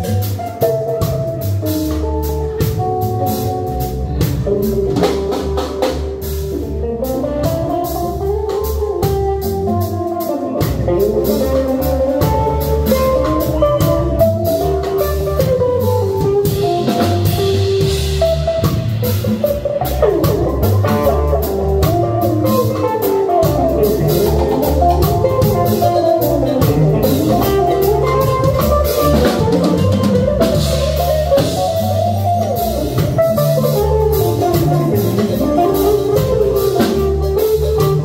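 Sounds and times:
drum kit: 0.0s - 38.0s
electric bass: 0.0s - 38.0s
lead melody: 0.0s - 38.0s.

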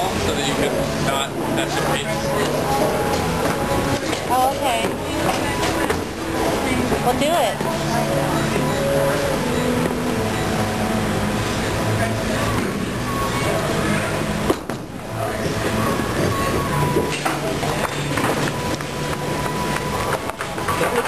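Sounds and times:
background music: 0.0s - 21.0s
many voices: 0.0s - 21.0s.

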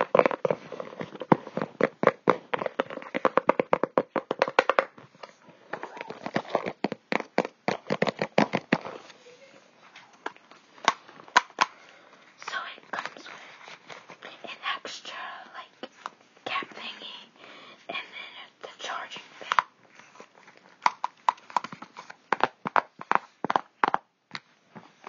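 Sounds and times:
cardboard packaging taps and clicks: 0.0s - 5.0s, 6.2s - 8.9s, 20.8s - 24.9s
soft whispering: 12.3s - 19.7s.

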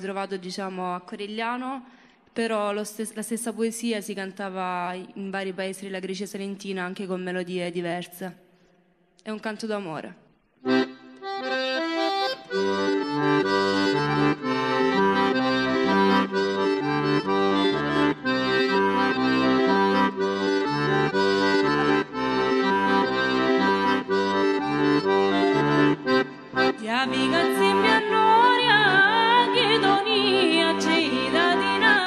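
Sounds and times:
button accordion melody: 10.6s - 32.0s.

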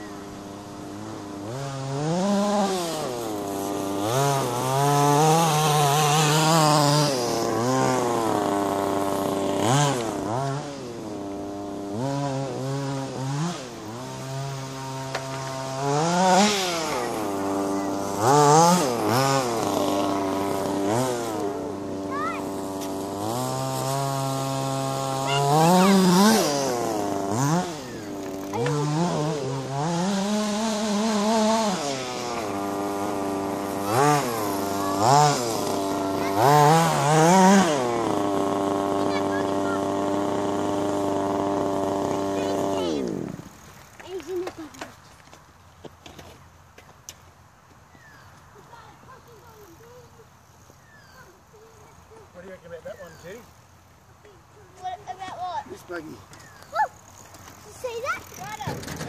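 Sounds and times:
small nitro engine revving: 0.0s - 45.1s, 47.9s - 59.0s.

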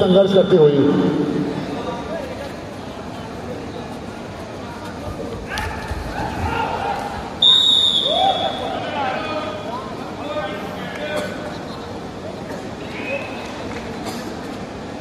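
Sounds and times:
people shouting: 5.5s - 7.2s
referee's whistle blast: 7.4s - 8.6s.

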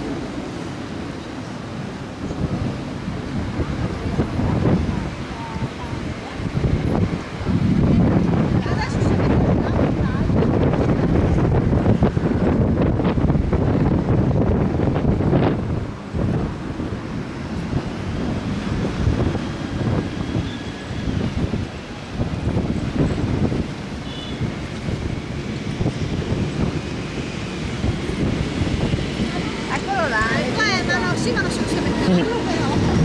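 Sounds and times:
waves washing on shore: 0.0s - 33.0s
wind buffeting microphone: 0.0s - 33.0s.

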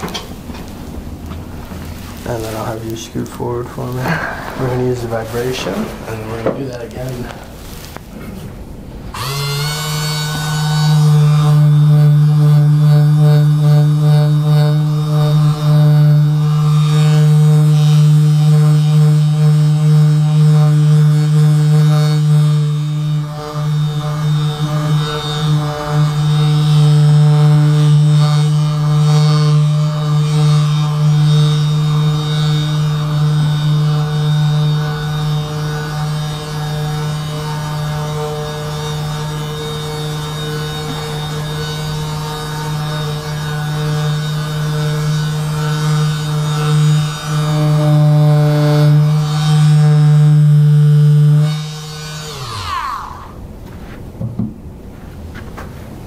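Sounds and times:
massager buzzing hum: 0.0s - 56.0s
motor winding down: 9.0s - 53.4s.

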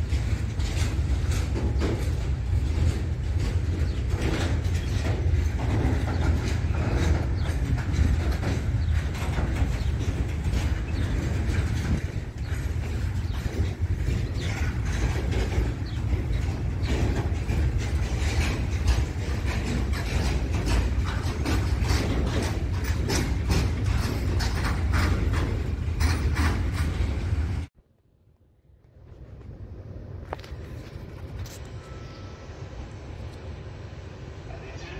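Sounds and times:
steel wheels clattering on rails: 0.0s - 27.7s
freight train rumbling past: 0.0s - 27.8s, 28.9s - 34.9s.

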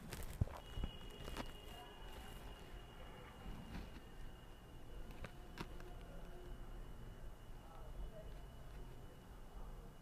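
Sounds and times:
faint high steady whine: 0.0s - 10.0s.

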